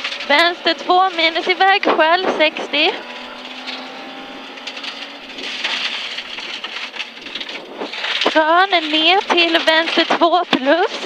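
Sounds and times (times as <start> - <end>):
car engine running: 0.0 - 11.0
tyre and gravel noise: 0.0 - 11.0.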